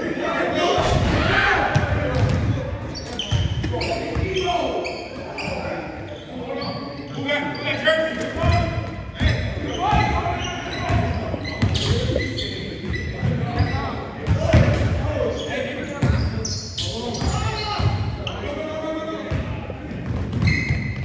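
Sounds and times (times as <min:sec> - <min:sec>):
sneakers squeaking: 0:01.7 - 0:18.6, 0:19.3 - 0:21.0.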